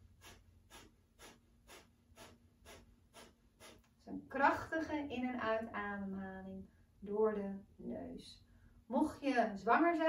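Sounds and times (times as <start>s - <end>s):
rapid forceful nose breathing: 0.0s - 4.0s.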